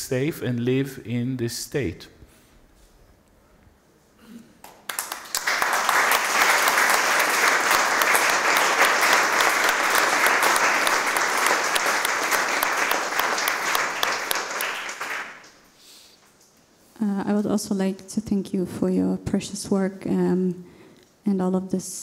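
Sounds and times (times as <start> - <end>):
audience applauding: 4.6 - 15.7.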